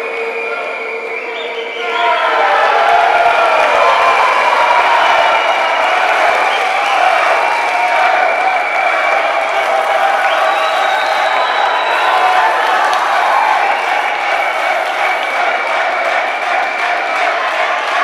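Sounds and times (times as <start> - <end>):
people clapping: 0.0 - 18.0
spectators cheering: 0.0 - 18.0.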